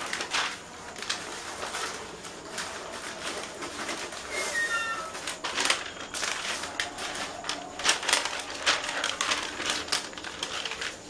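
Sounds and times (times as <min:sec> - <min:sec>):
plastic sheet rustling: 0:00.0 - 0:11.0.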